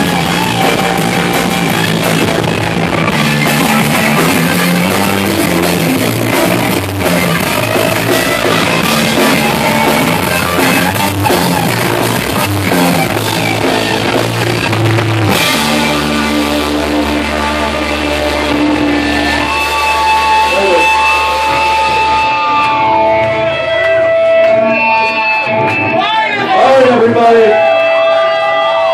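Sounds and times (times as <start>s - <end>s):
guitar feedback tones: 0.0s - 28.9s
punk band playing live: 0.0s - 28.9s.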